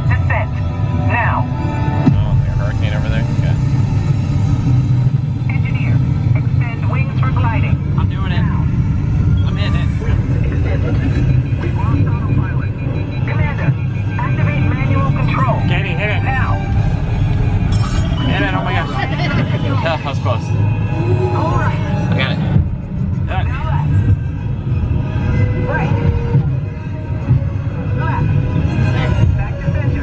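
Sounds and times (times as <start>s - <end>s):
heavy low rumble: 0.0s - 30.0s
voices talking: 5.4s - 8.8s, 9.4s - 16.9s, 17.8s - 24.1s.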